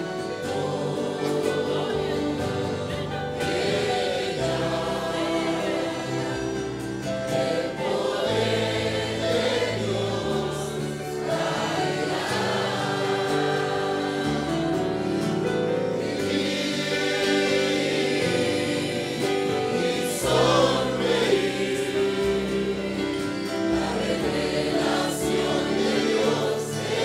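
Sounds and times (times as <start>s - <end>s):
congregation singing: 0.0s - 27.0s.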